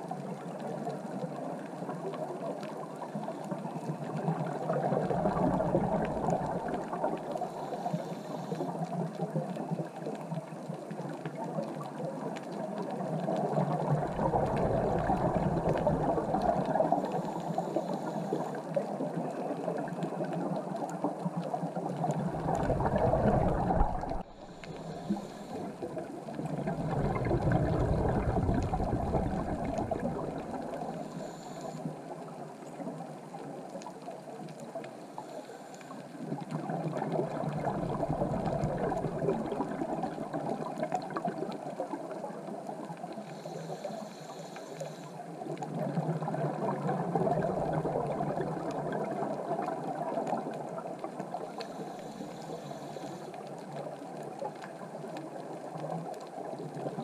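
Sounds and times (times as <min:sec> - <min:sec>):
steady underwater hiss: 0:00.0 - 0:57.0
diver exhaling bubbles: 0:04.3 - 0:07.1, 0:13.4 - 0:16.8, 0:22.0 - 0:31.3, 0:36.6 - 0:40.7.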